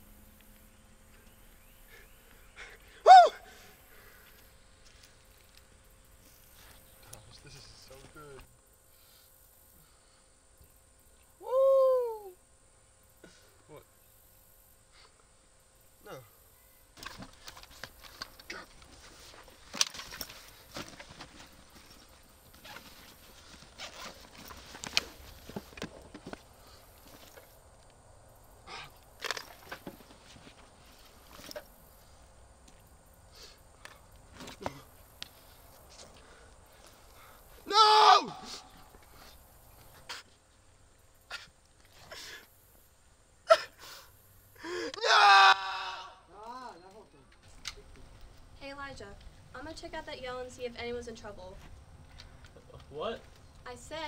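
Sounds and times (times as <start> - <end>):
person yelling in anguish: 3.0 - 3.5, 11.4 - 12.4, 37.6 - 38.7, 44.8 - 46.3
small clicks and rustles: 17.0 - 28.0.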